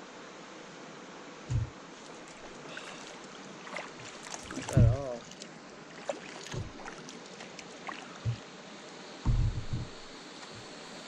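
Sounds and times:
faint steady hiss: 0:00.0 - 0:11.0
dull bumps: 0:01.5 - 0:02.5, 0:04.5 - 0:05.2, 0:06.5 - 0:06.9, 0:09.2 - 0:10.7
paddle strokes in water: 0:01.5 - 0:08.6, 0:09.2 - 0:10.8.

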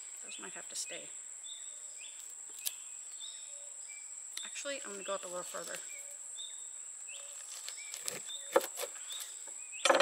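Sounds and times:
insect chirps: 0:00.0 - 0:10.0
leaf snapping: 0:02.2 - 0:02.8.

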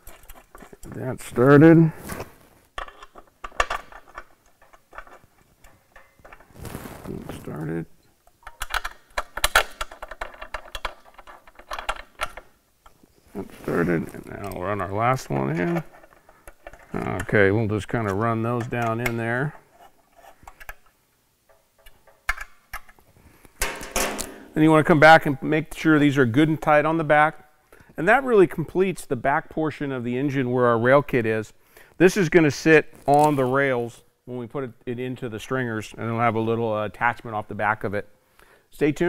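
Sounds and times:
metal bolts clicking and clinking: 0:02.8 - 0:06.5, 0:08.2 - 0:12.5, 0:23.6 - 0:24.7.

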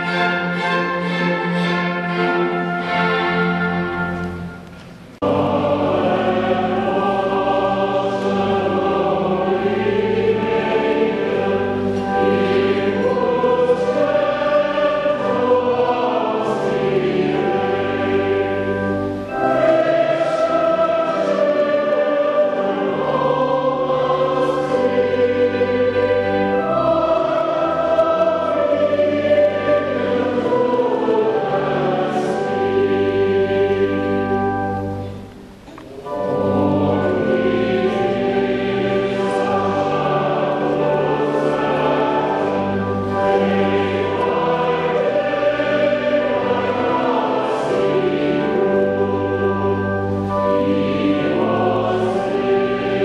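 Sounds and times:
church choir singing: 0:00.0 - 0:53.0.

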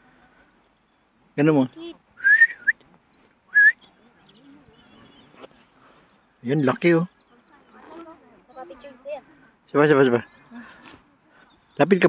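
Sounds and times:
short rising whistles: 0:02.2 - 0:02.9, 0:03.5 - 0:03.8.

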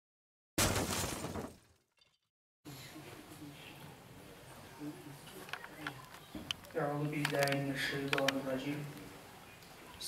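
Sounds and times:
shattering crash: 0:00.6 - 0:02.2.

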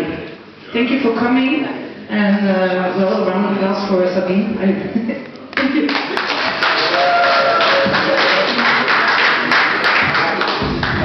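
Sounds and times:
audience clapping: 0:05.6 - 0:11.0.

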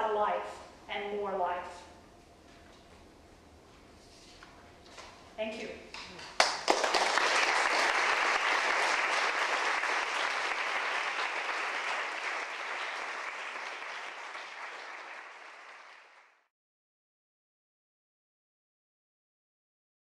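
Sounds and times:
audience applauding: 0:06.4 - 0:16.5.

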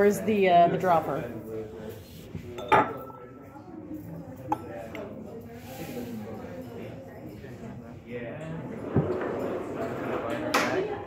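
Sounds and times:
glassware clinking: 0:02.6 - 0:03.5.

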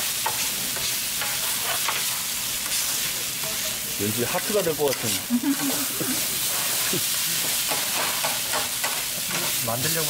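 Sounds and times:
rice sizzling on a griddle: 0:00.0 - 0:10.0.

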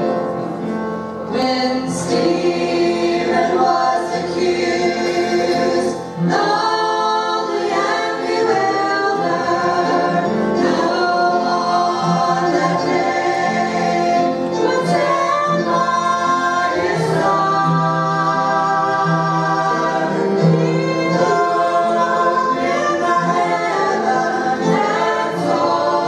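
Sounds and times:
gospel quartet singing: 0:00.0 - 0:26.0.

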